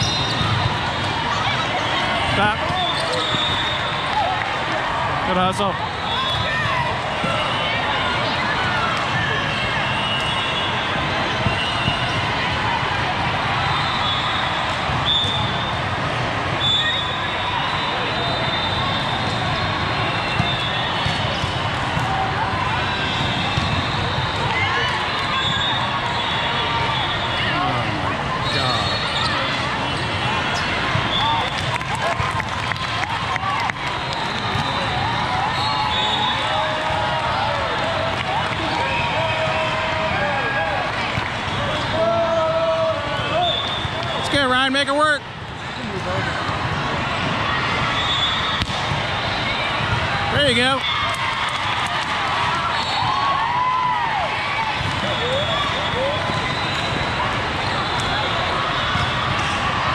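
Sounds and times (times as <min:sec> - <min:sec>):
loud shout: 0:31.0 - 0:44.2, 0:49.5 - 0:56.6.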